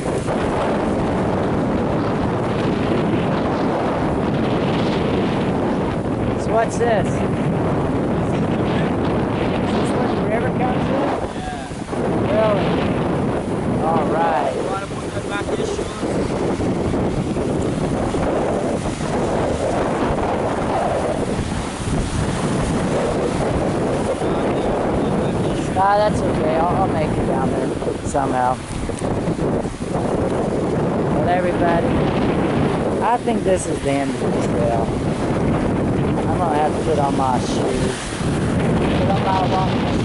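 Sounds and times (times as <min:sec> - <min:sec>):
sea surf: 0:00.0 - 0:40.0
wind buffeting microphone: 0:00.0 - 0:40.0
voices: 0:06.3 - 0:07.3, 0:08.3 - 0:12.9, 0:13.7 - 0:16.4, 0:24.0 - 0:28.7, 0:31.2 - 0:32.0, 0:33.0 - 0:35.0, 0:36.2 - 0:38.0, 0:38.8 - 0:40.0.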